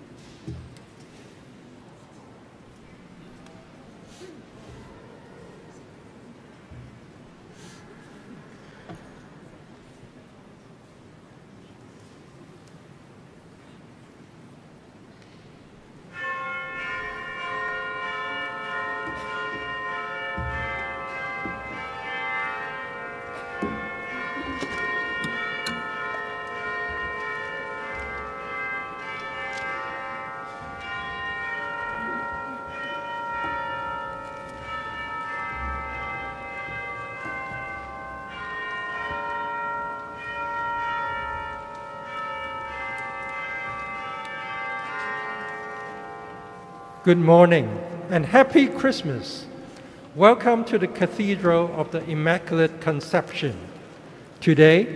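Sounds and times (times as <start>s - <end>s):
church bells ringing: 16.0s - 54.9s.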